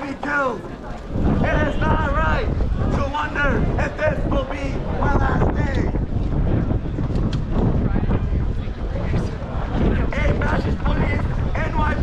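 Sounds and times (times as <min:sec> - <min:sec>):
faint crowd voices: 0:00.0 - 0:12.0
wind buffeting microphone: 0:00.0 - 0:12.0.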